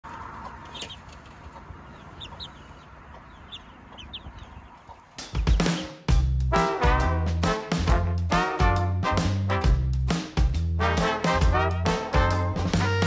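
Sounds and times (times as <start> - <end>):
chickens calling: 0.0 - 6.1
loud upbeat music: 5.3 - 13.0.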